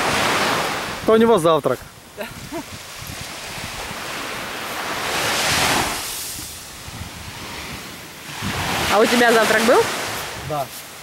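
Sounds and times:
waves washing on a beach: 0:00.0 - 0:11.0.

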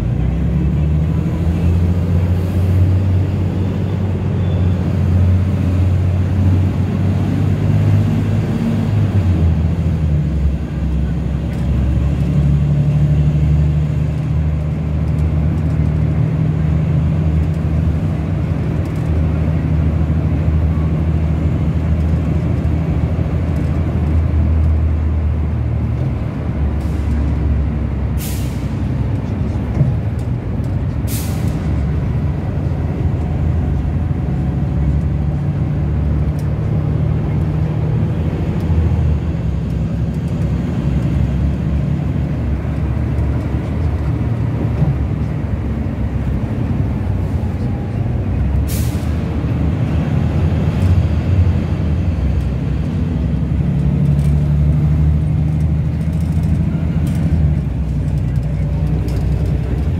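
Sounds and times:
bus engine drone: 0:00.0 - 0:59.9
air brake hisses: 0:28.2 - 0:28.8, 0:31.1 - 0:31.6, 0:48.7 - 0:49.2.

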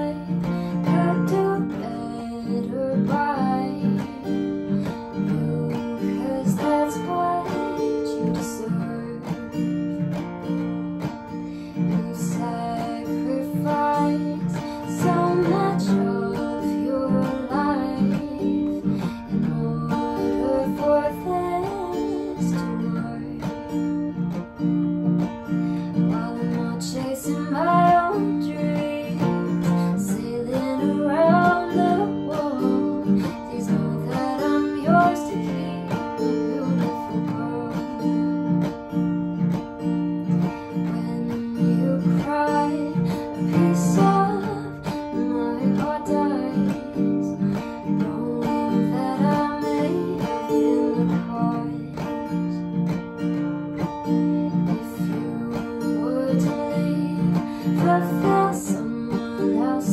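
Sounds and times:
acoustic guitar strumming: 0:00.0 - 0:59.9
woman singing: 0:00.0 - 0:59.9.

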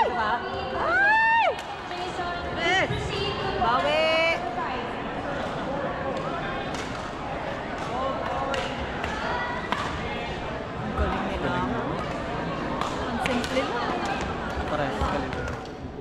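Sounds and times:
chatter in a hall: 0:00.0 - 0:16.0.

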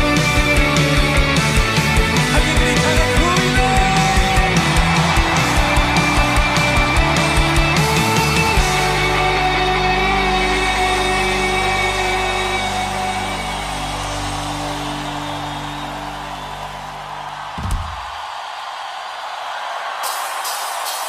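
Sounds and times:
thump: 0:17.6 - 0:18.2.

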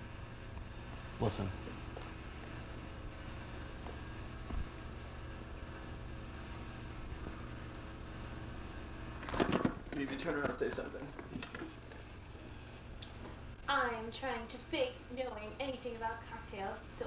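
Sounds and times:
tape hum and hiss: 0:00.0 - 0:17.0
man speaking: 0:01.2 - 0:01.6
soft bump: 0:03.8 - 0:04.8.

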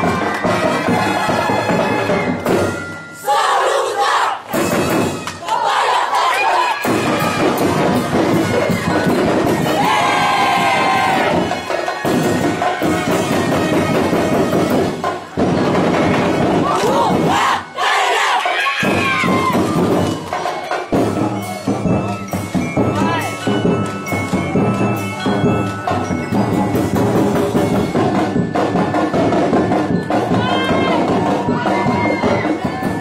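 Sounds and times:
group shouting and chanting: 0:00.0 - 0:14.3, 0:16.5 - 0:21.8, 0:30.2 - 0:33.0
drum-driven dance music: 0:00.0 - 0:33.0
group shouting in unison: 0:03.2 - 0:04.5, 0:05.4 - 0:11.8, 0:16.6 - 0:19.8.

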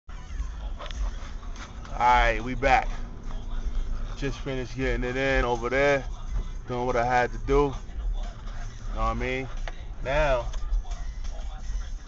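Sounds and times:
vehicle rumble from inside cab: 0:00.1 - 0:12.0.

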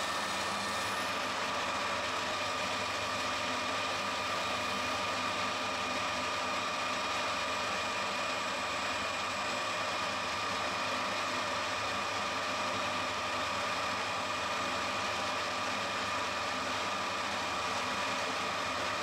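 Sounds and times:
metal lathe running: 0:00.0 - 0:19.0.

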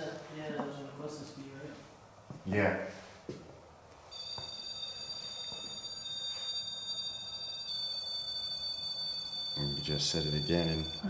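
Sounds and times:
high-pitched electronic alarm tone: 0:04.1 - 0:11.0.

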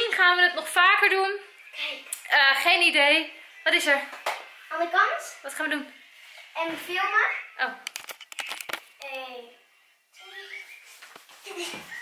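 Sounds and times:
clicks from handling camera: 0:07.9 - 0:09.1
child's voice: 0:09.0 - 0:09.6.

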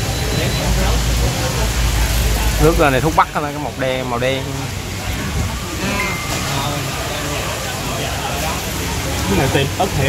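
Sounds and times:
indistinct talk: 0:00.0 - 0:10.0.

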